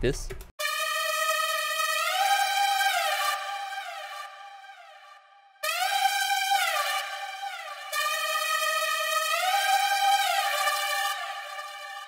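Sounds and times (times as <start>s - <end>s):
gliding synth lead: 0.6s - 12.0s.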